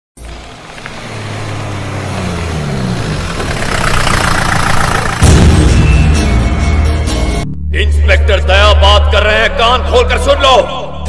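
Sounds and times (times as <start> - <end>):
motorcycle engine running: 0.2 - 6.4
loud music with heavy bass: 5.1 - 8.4.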